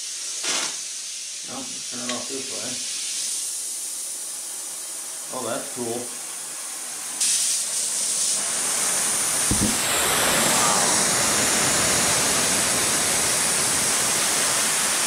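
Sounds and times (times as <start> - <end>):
torch flame hissing: 0.0 - 15.0
brief low thump: 9.5 - 9.8.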